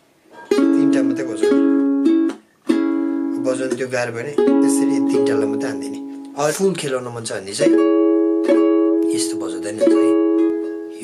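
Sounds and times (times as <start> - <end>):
ukulele chords strummed: 0.3 - 11.0.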